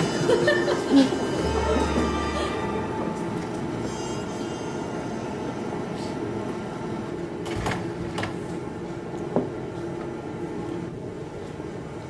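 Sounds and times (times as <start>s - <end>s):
droning hum: 0.0s - 12.0s.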